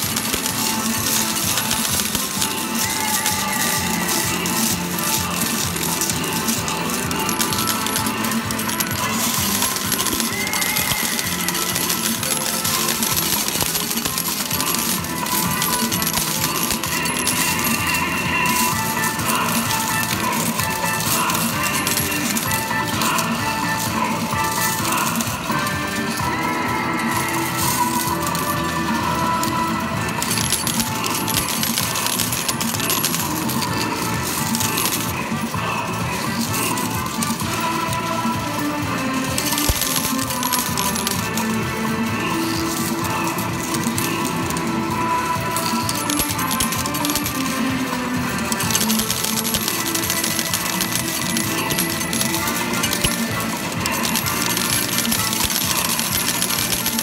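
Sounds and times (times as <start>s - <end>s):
electronic arcade music: 0.0s - 57.0s
metal medals clinking: 0.0s - 57.0s.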